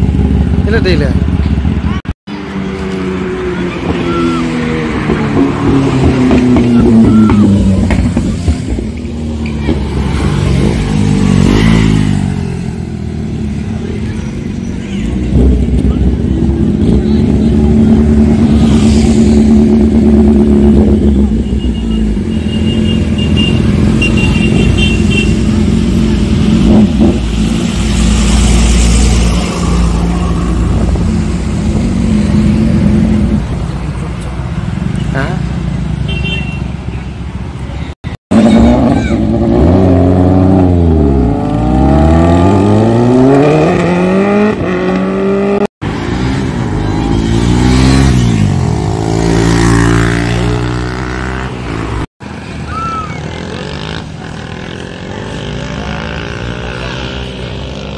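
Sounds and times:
motorcycle engines revving: 0.0s - 57.9s.

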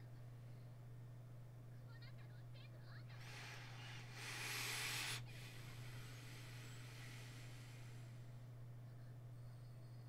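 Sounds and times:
low electrical hum: 0.0s - 10.0s
faint rushing hiss: 3.2s - 8.4s.

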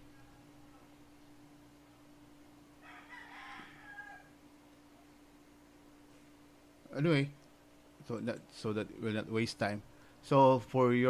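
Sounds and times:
steady low hum: 0.0s - 11.0s
rooster crowing: 2.8s - 4.4s.

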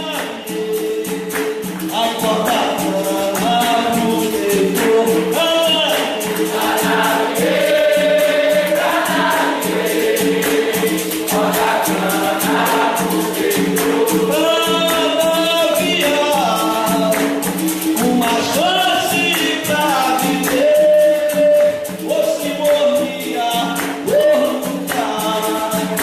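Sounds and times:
berimbau and pandeiro: 0.0s - 26.0s
group singing in chorus: 0.0s - 26.0s.

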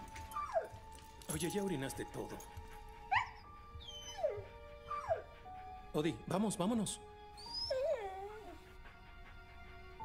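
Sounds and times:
dog whimpering: 3.1s - 5.4s, 7.4s - 8.8s.

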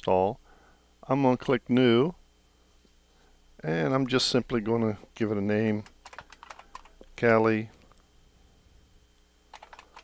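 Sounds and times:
computer keyboard typing: 5.8s - 7.0s, 9.5s - 10.0s.

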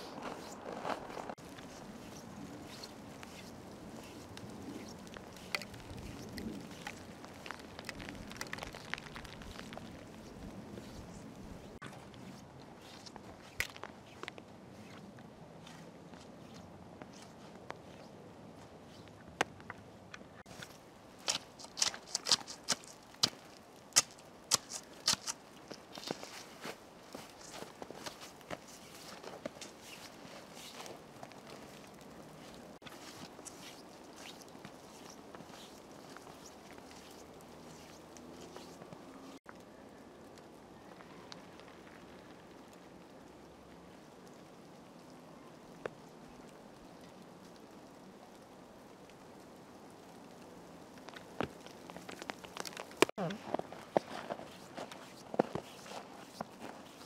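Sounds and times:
footsteps crunching in snow: 0.0s - 19.1s, 20.4s - 39.4s, 51.0s - 57.0s
faint outdoor background: 0.0s - 57.0s.

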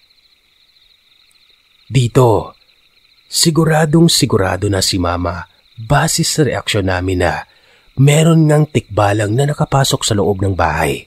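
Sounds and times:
night insects trilling: 0.0s - 11.0s
person speaking: 1.9s - 2.5s, 3.3s - 11.0s.

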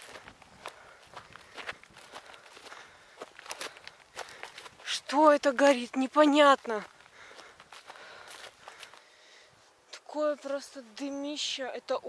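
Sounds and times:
footsteps in dry grass: 0.0s - 9.8s.

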